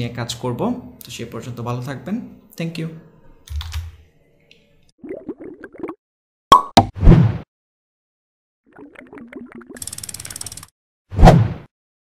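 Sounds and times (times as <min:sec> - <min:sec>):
rapid clicks: 0:09.8 - 0:10.7.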